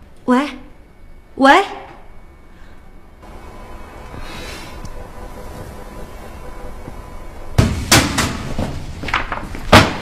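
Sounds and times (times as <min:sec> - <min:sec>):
low steady hum: 0:00.0 - 0:10.0
loud sharp knocks: 0:07.6 - 0:08.8, 0:09.7 - 0:10.0.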